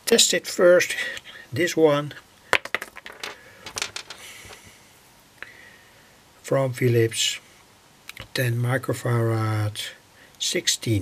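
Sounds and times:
handling clicks and knocks: 0:02.6 - 0:04.6.

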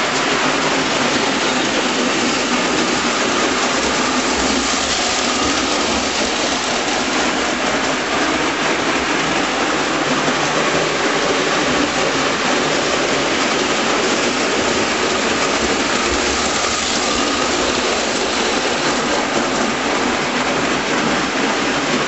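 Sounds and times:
electric train motor running: 0:00.0 - 0:22.0
toy train wheels rattling on rails: 0:00.0 - 0:22.0.

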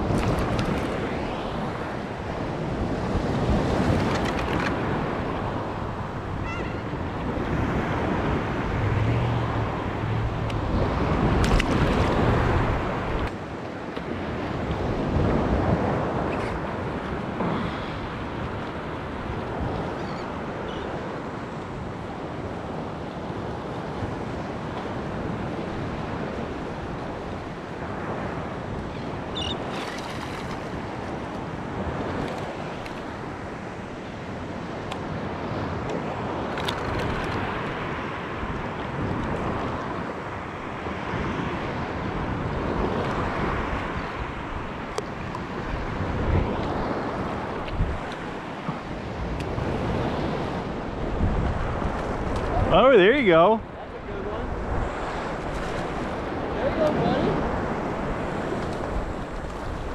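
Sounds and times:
ocean surf sloshing: 0:00.0 - 0:59.9
wind buffeting microphone: 0:00.0 - 0:59.9.

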